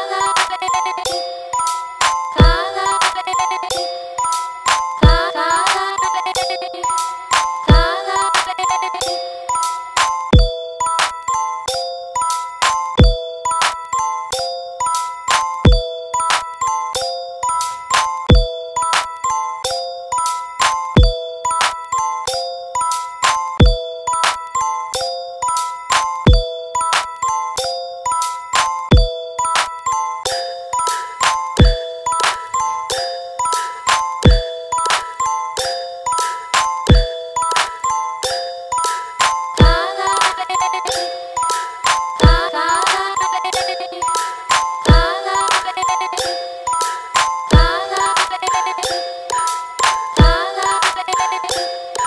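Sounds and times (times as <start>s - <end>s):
electronic dance beat: 2.0s - 3.4s, 4.7s - 6.6s, 7.4s - 8.6s, 39.2s - 40.7s, 41.5s - 43.2s, 44.2s - 46.0s, 47.2s - 48.8s, 49.8s - 51.4s.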